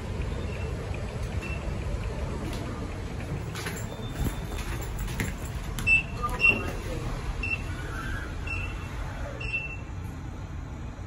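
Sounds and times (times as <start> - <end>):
lift electronic beeps: 0.2 - 1.8, 5.8 - 6.8, 7.4 - 10.0.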